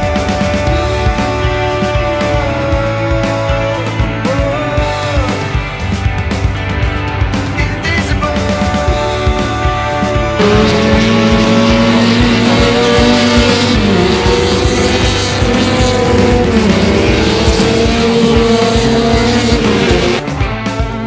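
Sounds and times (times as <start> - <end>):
race car engines running hard: 0.0 - 21.0
rock music with drum beat: 0.0 - 21.0.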